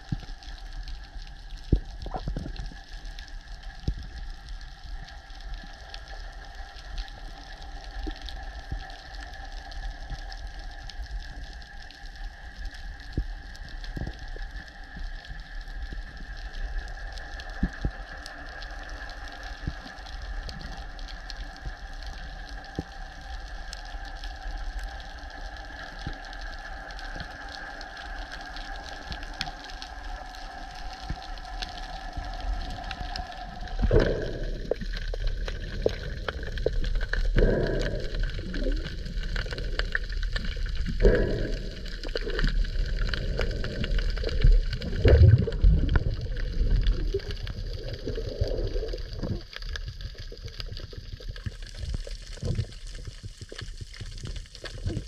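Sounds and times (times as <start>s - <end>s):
faint underwater clicks: 0.0s - 55.0s
underwater mechanical hum: 0.0s - 55.0s.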